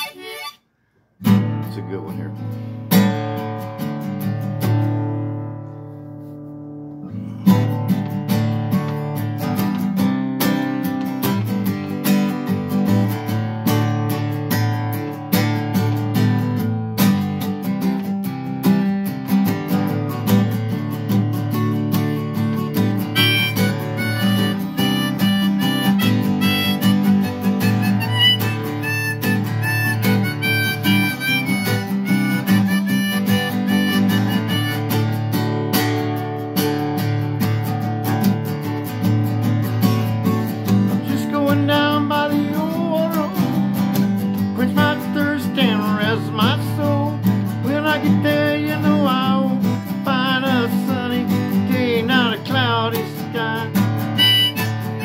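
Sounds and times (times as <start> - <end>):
harmonica melody: 0.0 - 0.7, 22.8 - 35.6, 53.6 - 55.0
acoustic guitar strumming: 0.0 - 55.0.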